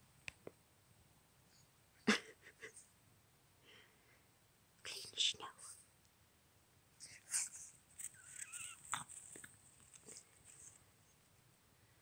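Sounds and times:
person whispering: 0:04.8 - 0:05.9, 0:07.0 - 0:07.7.

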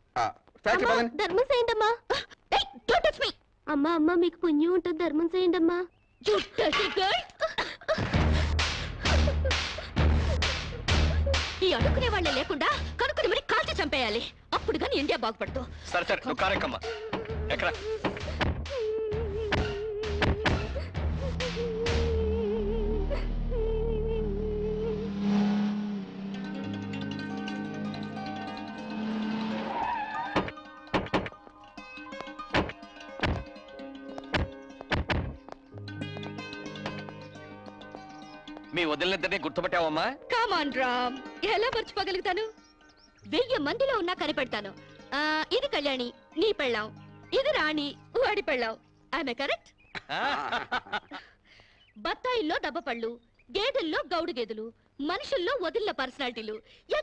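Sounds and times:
sustained musical tones: 0:15.4 - 0:49.2
deep bass rumble: 0:20.9 - 0:29.6.

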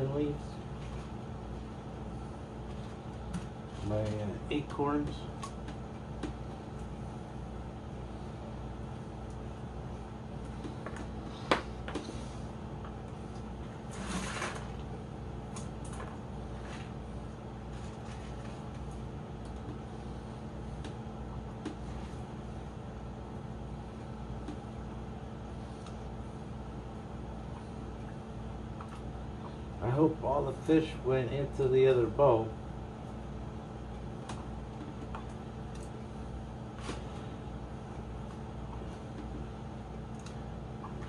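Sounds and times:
aquarium air pump humming: 0:00.0 - 0:41.0.

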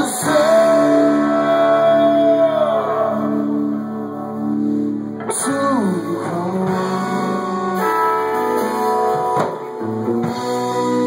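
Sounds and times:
electric guitars and bass chords: 0:00.0 - 0:11.0.

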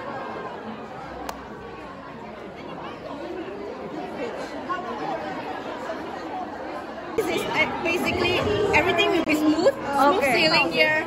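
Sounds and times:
people talking over one another: 0:01.2 - 0:11.0.

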